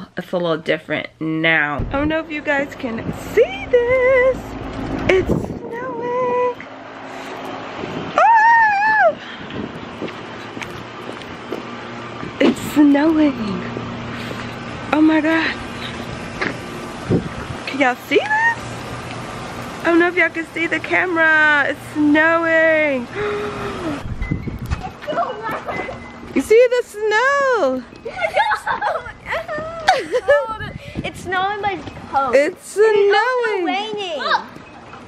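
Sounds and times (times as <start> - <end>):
outdoor background hiss: 0.0 - 35.0
wind or handling rumble: 1.3 - 35.0
high exclamation: 8.2 - 9.2, 18.1 - 18.7
woman's excited cry: 8.2 - 9.2, 18.2 - 18.6, 29.2 - 30.6.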